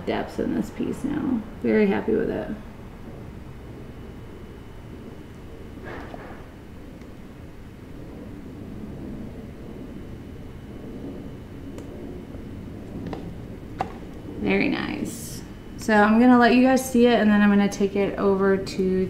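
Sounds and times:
low room background noise: 0.0s - 19.0s.

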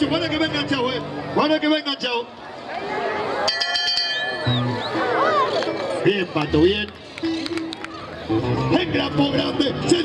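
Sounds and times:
people shouting: 2.5s - 6.0s
metallic clinking ring: 3.5s - 4.5s
background music: 3.5s - 10.0s.

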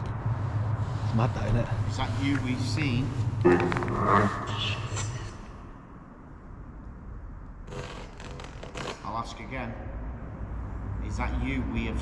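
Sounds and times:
broken broadcast voice: 1.1s - 5.4s.

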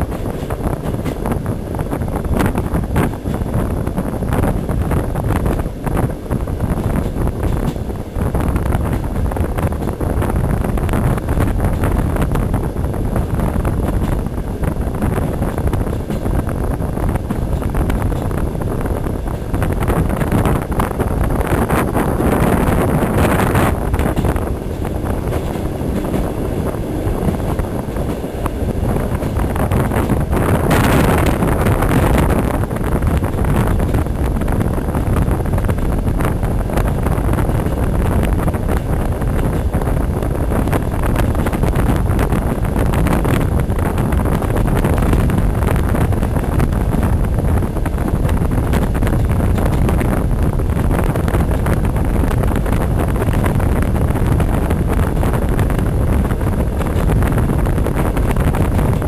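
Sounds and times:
train rumbling in motion: 0.0s - 59.0s
wind on microphone: 0.0s - 59.0s.

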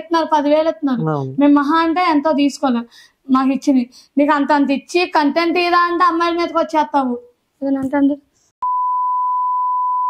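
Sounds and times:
high censor beep: 8.6s - 10.0s.

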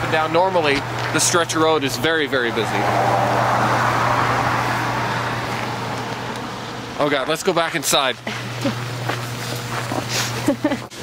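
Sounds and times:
vehicle passing on snowy street: 0.0s - 7.2s
steady low hum: 0.0s - 11.0s.

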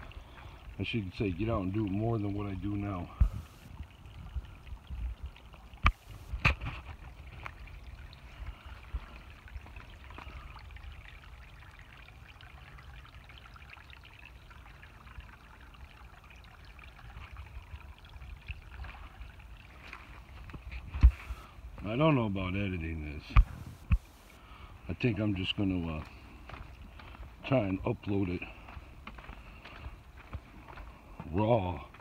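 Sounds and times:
creek water trickling over rock: 0.0s - 32.0s.

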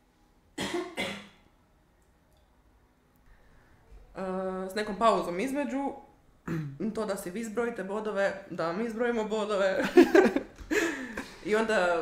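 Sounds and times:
person coughing: 0.6s - 1.4s, 6.4s - 6.8s.

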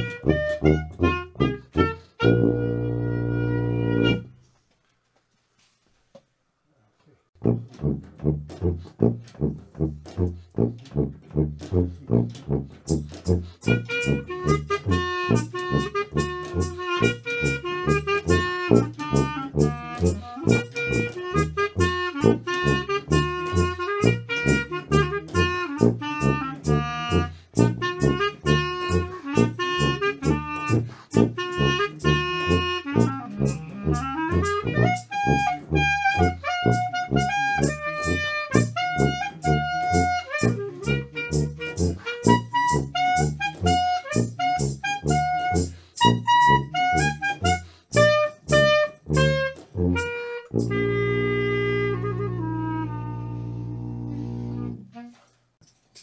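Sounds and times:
low brass bass line: 0.0s - 4.4s, 7.4s - 55.1s
brass melody: 0.0s - 4.5s, 7.4s - 55.4s.

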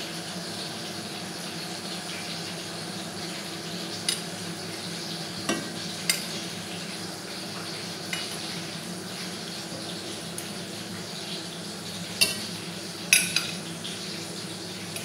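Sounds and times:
oil sizzling in a frying pan: 0.0s - 15.0s.

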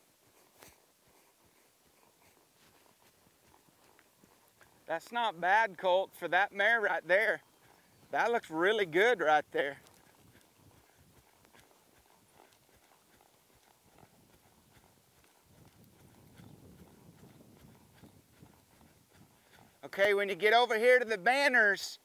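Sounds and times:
hoofbeats on dirt: 0.0s - 22.0s.

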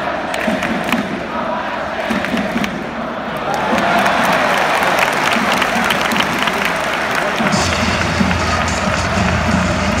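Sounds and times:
stadium crowd noise: 0.0s - 10.0s
music from cheering section: 5.0s - 10.0s.

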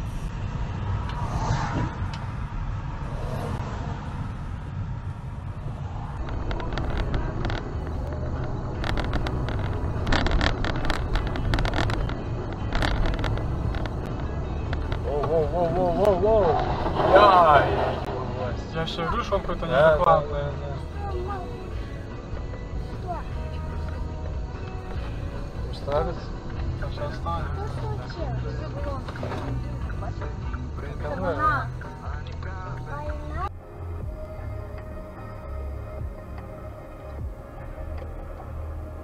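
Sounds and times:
car engine and road rumble: 0.0s - 39.0s.

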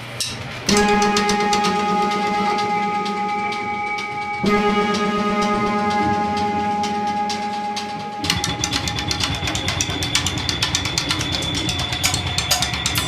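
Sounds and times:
fast drumming and cymbals: 4.6s - 13.0s.

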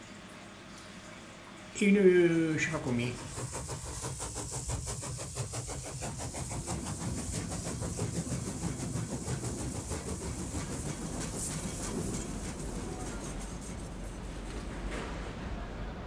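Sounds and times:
train wheels clattering: 2.8s - 16.0s.

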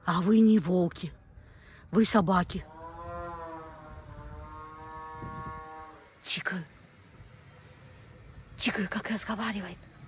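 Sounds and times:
wolf howling: 2.6s - 6.2s.

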